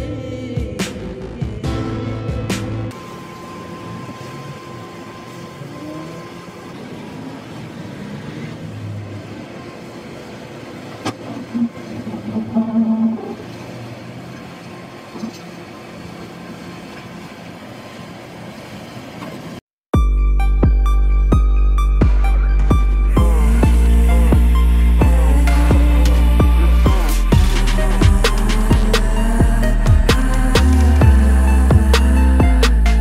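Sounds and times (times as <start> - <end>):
excavator diesel engine running: 2.9 - 19.6, 21.8 - 33.0
hydraulic noise: 2.9 - 19.6, 22.2 - 33.0.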